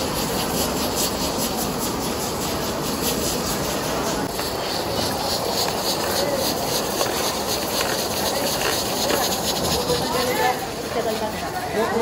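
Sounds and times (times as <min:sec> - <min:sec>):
ladle stirring in pot: 0:00.0 - 0:11.2
hiss of burners and steam: 0:00.0 - 0:12.0.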